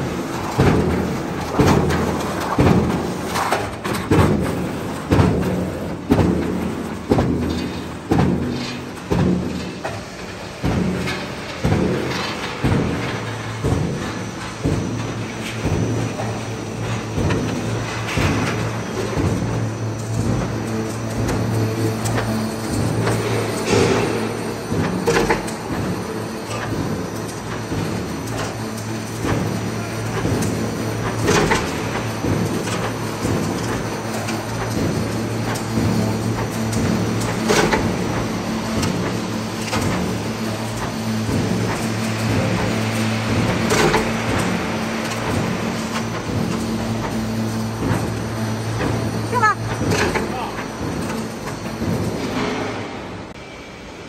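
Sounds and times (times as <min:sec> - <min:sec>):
motor hum: 0:00.0 - 0:53.3
metal strip rattling through rollers: 0:00.0 - 0:53.4.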